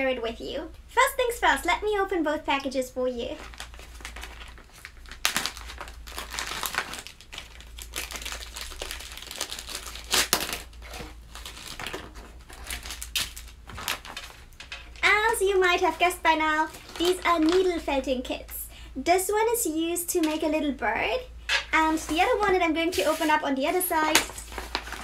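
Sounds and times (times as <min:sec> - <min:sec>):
plastic bags crinkling: 0:03.3 - 0:18.0, 0:21.5 - 0:25.0.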